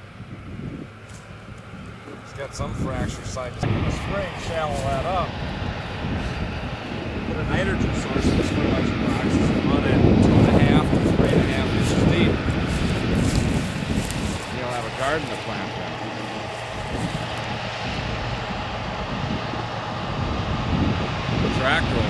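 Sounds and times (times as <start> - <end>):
tractor diesel engine running: 0.0 - 22.0.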